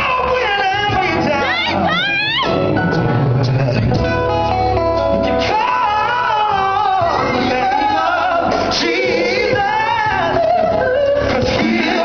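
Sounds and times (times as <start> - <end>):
male gospel group singing: 0.0 - 12.0.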